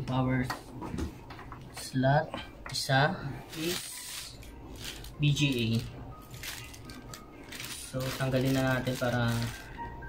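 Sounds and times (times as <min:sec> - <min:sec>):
plastic packaging crinkling: 0:03.5 - 0:10.0.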